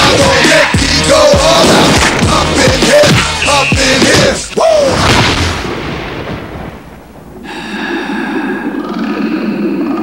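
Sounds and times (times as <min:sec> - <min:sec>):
loud boom: 0:04.8 - 0:07.4.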